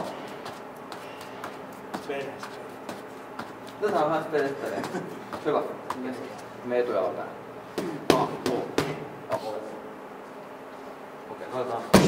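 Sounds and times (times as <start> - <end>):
boxing gloves smacking pads: 7.8 - 9.1.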